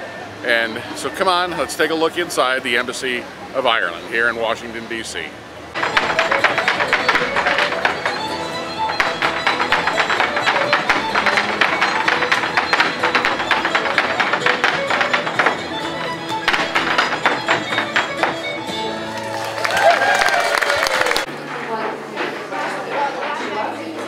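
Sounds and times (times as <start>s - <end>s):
hard shoes tapping on wooden board: 5.8s - 18.8s
dance music: 5.8s - 19.3s.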